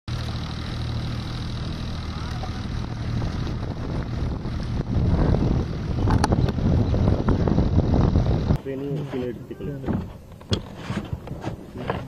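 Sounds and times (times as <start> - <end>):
engine droning: 0.1 - 12.0.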